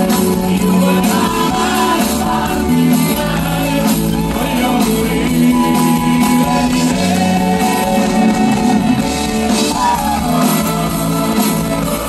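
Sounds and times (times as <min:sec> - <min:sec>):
electric guitars: 0:00.0 - 0:12.0
live rock band playing: 0:00.0 - 0:12.0
person singing: 0:00.0 - 0:12.0.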